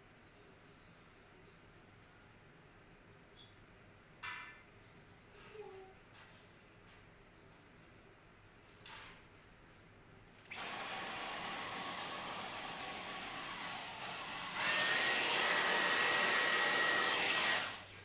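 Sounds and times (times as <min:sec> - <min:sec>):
stick vacuum cleaner running: 0:10.5 - 0:18.0.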